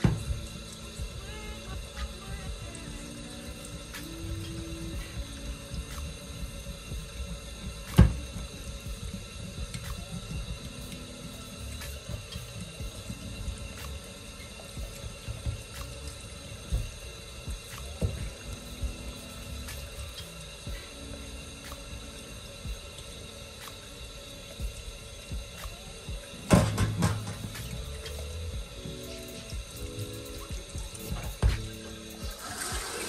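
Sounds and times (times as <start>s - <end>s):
background music with held tones: 0.0s - 33.0s
tap water running into sink: 0.0s - 33.0s
glass jar rinsed by hand: 26.2s - 33.0s.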